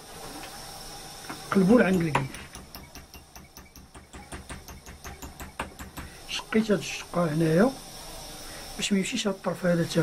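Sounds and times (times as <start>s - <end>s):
light hammer taps on sheet metal: 1.9s - 6.2s.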